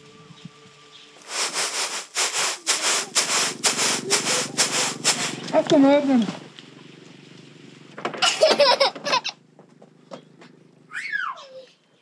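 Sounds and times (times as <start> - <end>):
grain swishing in woven basket: 0.7 - 6.4.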